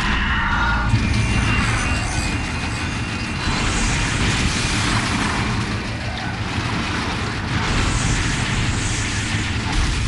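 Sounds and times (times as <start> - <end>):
heavy continuous rumble: 0.0 - 10.0.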